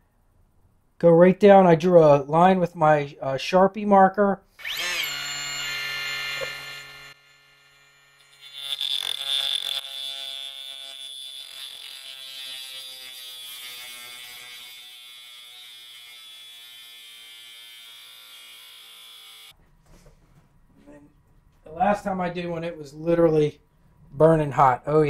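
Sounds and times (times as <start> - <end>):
power saw cutting metal: 4.6 - 19.5.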